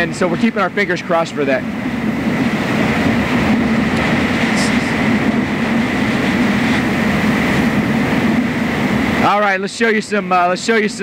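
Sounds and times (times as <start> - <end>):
howling wind: 0.0 - 11.0.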